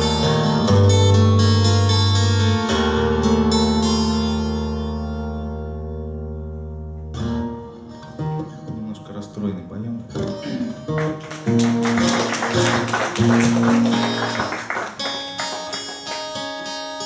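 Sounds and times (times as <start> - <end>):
acoustic guitar picking and strumming: 0.0 - 17.0.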